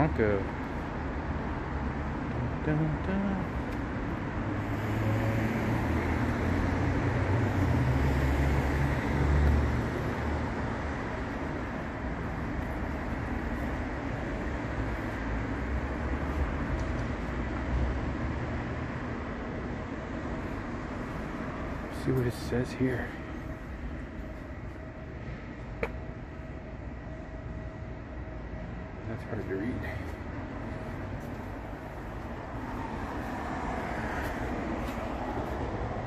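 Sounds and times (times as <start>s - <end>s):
heavy vehicle rumble: 0.0s - 36.0s
street traffic noise: 0.0s - 36.0s.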